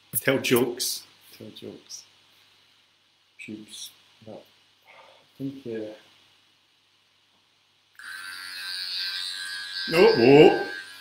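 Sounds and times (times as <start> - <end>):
electric hair clippers running: 8.0 - 11.0.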